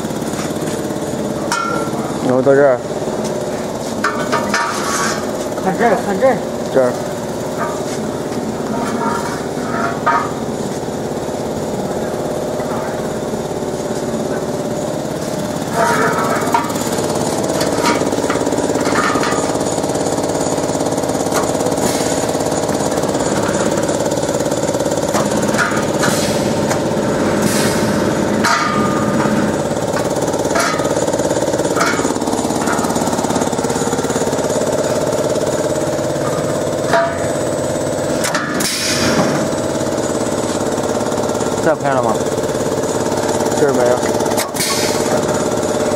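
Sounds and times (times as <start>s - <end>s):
machinery drone: 0.0s - 45.9s.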